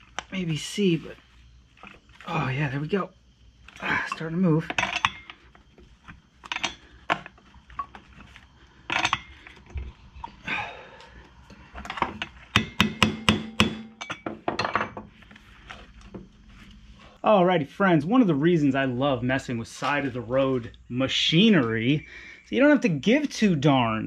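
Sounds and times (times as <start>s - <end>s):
hand tools knocking on metal: 11.9s - 15.1s.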